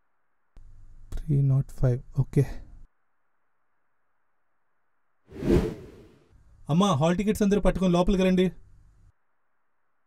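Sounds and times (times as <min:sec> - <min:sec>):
whoosh sound effect: 0:05.4 - 0:06.1.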